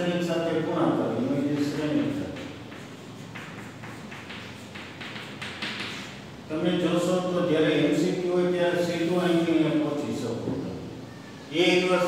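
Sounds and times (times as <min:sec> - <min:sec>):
chalk tapping on a blackboard: 0:01.3 - 0:06.4.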